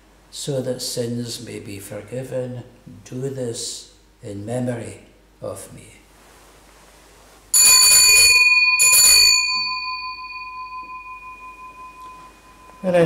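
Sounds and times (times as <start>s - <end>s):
altar bell ringing: 7.6s - 13.0s.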